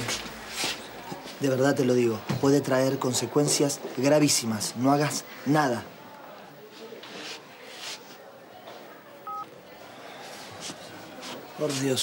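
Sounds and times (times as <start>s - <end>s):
phone two-tone keypad beep: 9.3s - 9.5s.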